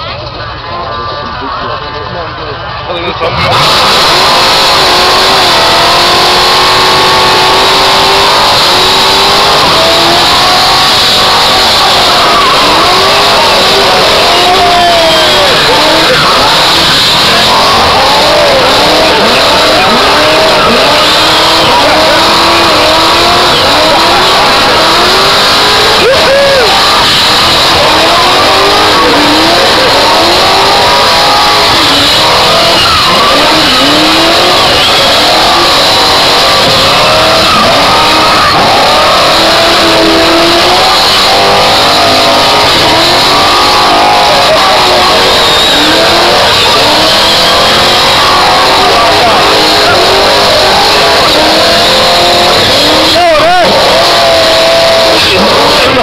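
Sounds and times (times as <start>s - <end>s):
car engine revving hard: 3.0s - 56.0s.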